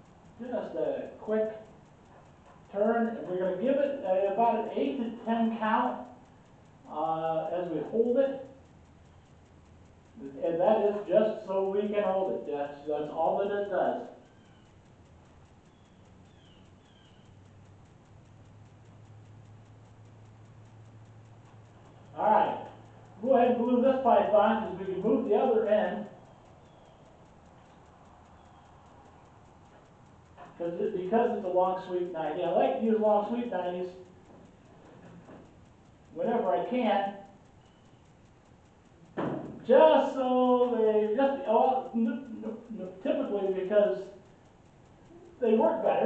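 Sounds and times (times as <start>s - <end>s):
faint background hiss: 0.0s - 46.0s
faint low hum: 0.0s - 46.0s
light even ticking: 0.0s - 46.0s.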